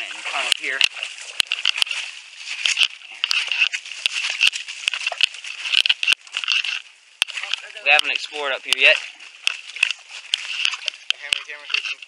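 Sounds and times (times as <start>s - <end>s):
footsteps crunching through dry leaves: 0.0s - 12.0s
twigs cracking: 0.0s - 12.0s.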